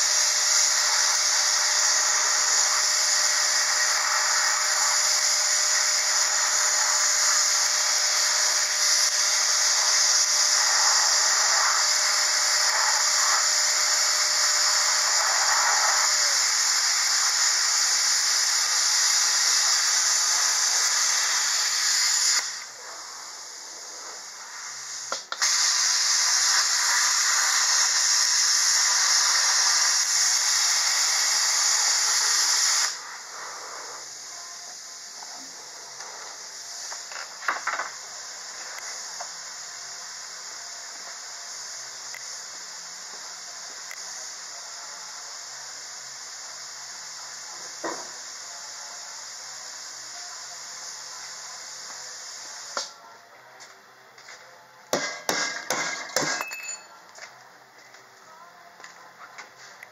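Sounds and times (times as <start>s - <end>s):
welding arc hissing and crackling: 0.0s - 59.9s.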